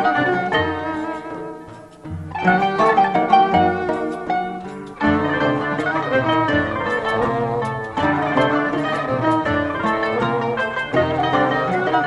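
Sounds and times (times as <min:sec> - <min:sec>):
accordion: 0:00.0 - 0:12.0
plucked table zither: 0:00.0 - 0:12.0
violin: 0:00.0 - 0:12.0.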